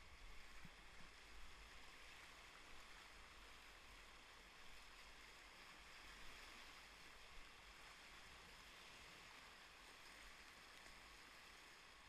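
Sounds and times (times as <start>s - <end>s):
river water over rapids: 0.0s - 12.0s.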